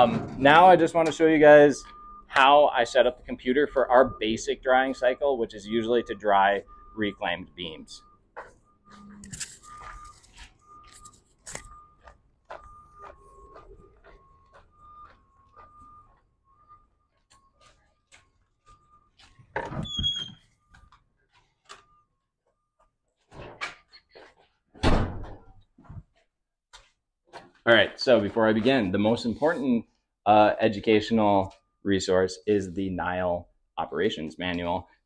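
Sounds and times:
footsteps on concrete: 11.3 - 19.6, 25.8 - 28.9
door squealing open: 19.6 - 20.5
heavy door thuds: 24.8 - 25.5.

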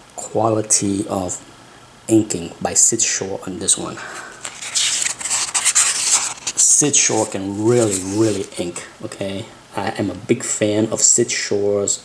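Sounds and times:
paper pages rustling: 4.0 - 8.6.

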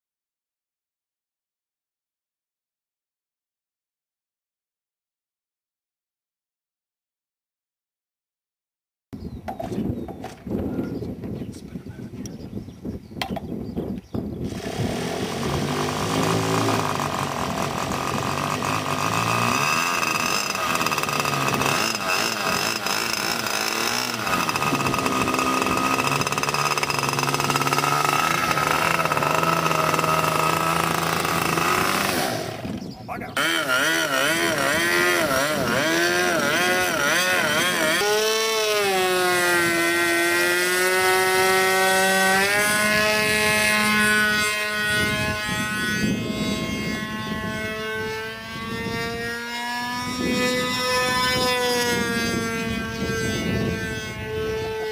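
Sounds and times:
model airplane engine: 13.1 - 54.9.

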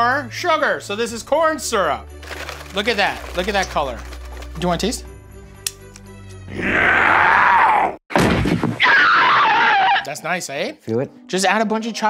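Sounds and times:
girl screaming: 6.6 - 8.0, 8.8 - 10.0.

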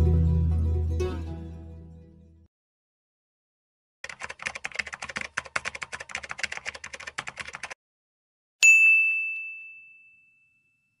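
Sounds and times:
bell ding: 8.6 - 11.0.

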